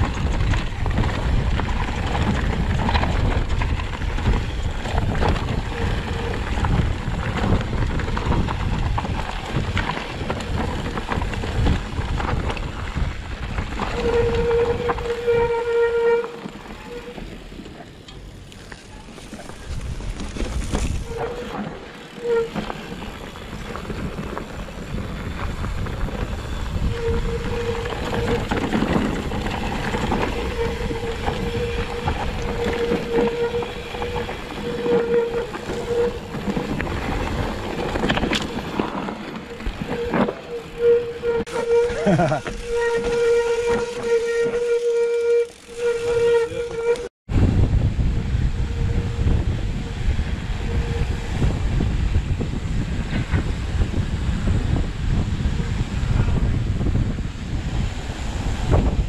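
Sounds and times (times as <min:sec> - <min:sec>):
wind on microphone: 0:00.0 - 0:17.4, 0:19.3 - 0:59.0
bike tyres and frame rattling: 0:00.0 - 0:59.0.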